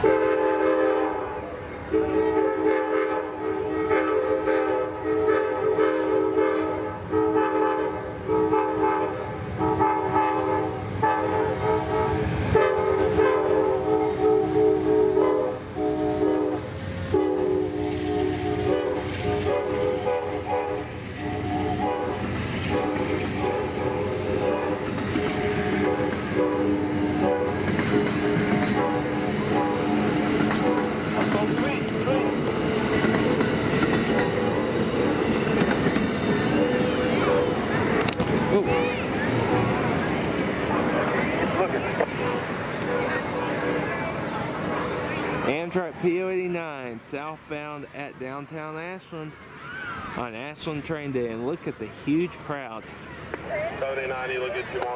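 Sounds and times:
locomotive air horn blasts: 0.0 - 31.0, 36.5 - 37.7, 42.0 - 43.9
train rushing rumble: 0.0 - 54.9
train wheels clicking over rail joints: 11.8 - 38.9.

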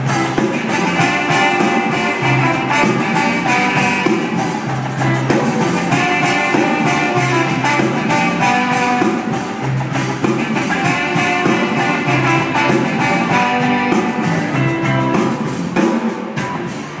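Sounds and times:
drum beat: 0.0 - 17.0
live rock band playing: 0.0 - 17.0.

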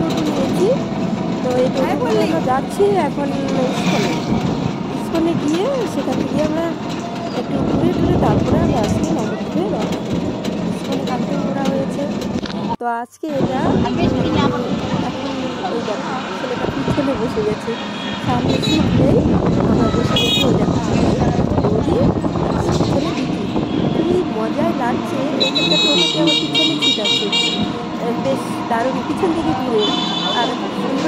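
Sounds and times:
road traffic: 0.0 - 31.0
vehicle horns honking: 16.8 - 21.0, 23.2 - 28.0, 29.2 - 31.0.

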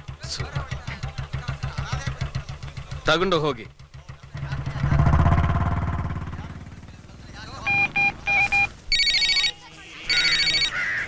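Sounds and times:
motorcycle engine revving: 0.0 - 8.9
mobile phone ringing: 7.6 - 10.8.

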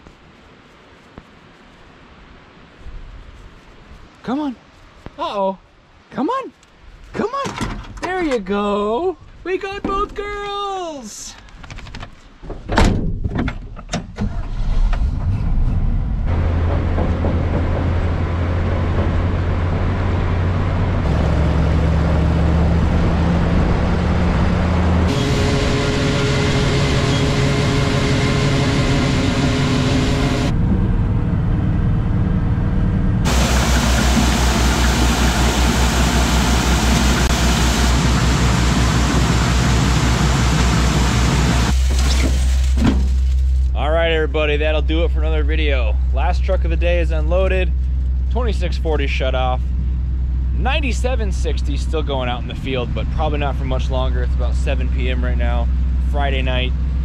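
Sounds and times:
truck engine running: 16.0 - 57.0
sharp knocks: 16.4 - 19.4.

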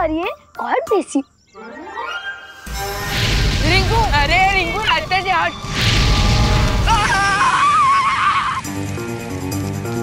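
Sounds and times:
background music: 0.0 - 10.0
creature squealing cry: 6.9 - 8.6.

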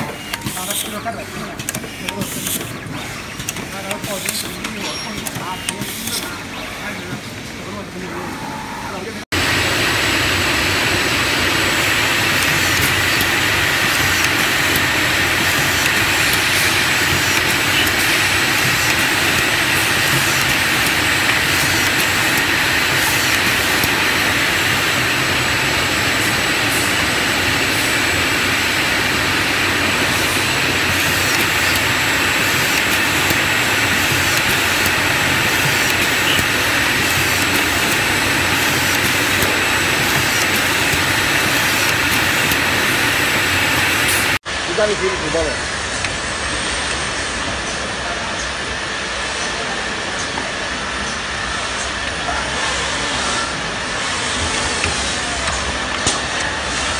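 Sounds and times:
factory machinery roar: 0.0 - 56.9.

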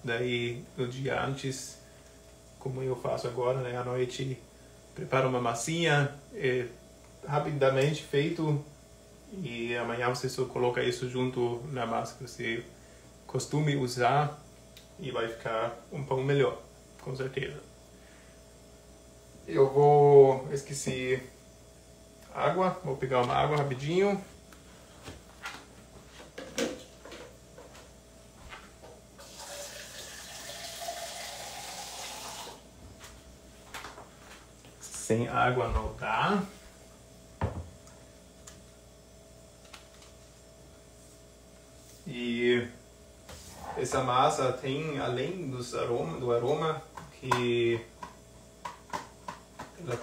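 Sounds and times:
man talking: 0.0 - 1.8, 2.6 - 4.4, 5.0 - 8.7, 9.3 - 12.7, 13.3 - 14.4, 15.0 - 17.7, 19.5 - 21.3, 22.3 - 24.3, 34.8 - 36.6, 42.0 - 42.8, 43.7 - 47.9, 49.8 - 50.0.

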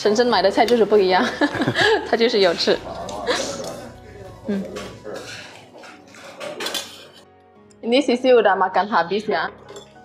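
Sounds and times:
soft background music: 0.0 - 10.0
metal spoon scraping bowl: 4.7 - 7.3.

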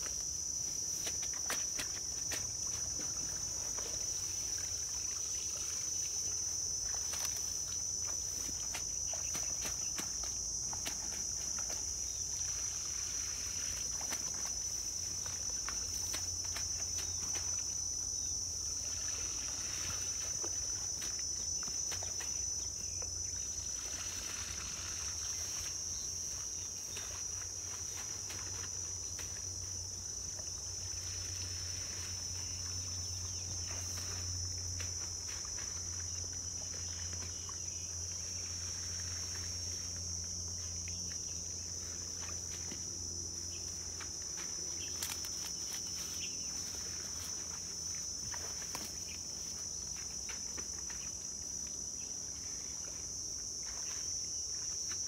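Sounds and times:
insect chorus buzzing: 0.0 - 55.0.

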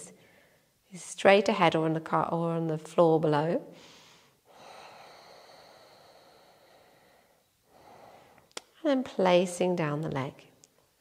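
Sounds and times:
woman breathing out softly: 3.8 - 8.5.

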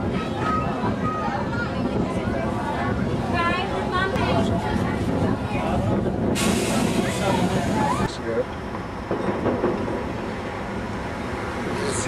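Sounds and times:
voices: 0.0 - 8.6
street traffic rumble: 0.0 - 12.0.

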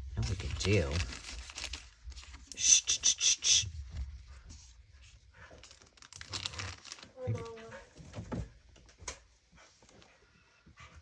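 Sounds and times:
paper rustling and crinkling: 0.0 - 2.6, 3.8 - 8.4.

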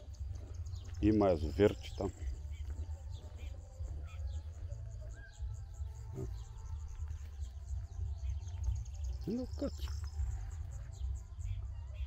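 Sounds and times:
steady low rumble: 0.0 - 11.8
bird chirps: 0.0 - 12.0
insect high-pitched pulsing: 0.0 - 12.0.

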